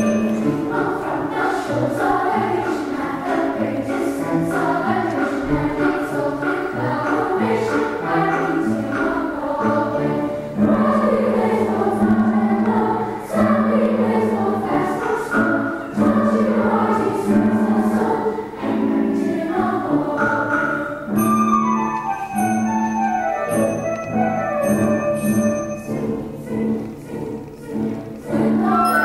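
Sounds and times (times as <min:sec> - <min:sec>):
children's choir singing: 0:00.0 - 0:29.0.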